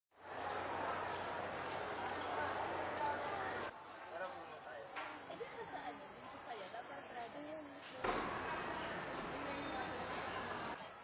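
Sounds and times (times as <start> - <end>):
faint distant voices: 0.2 - 11.0
high-pitched insect drone: 5.2 - 8.3, 10.8 - 11.0.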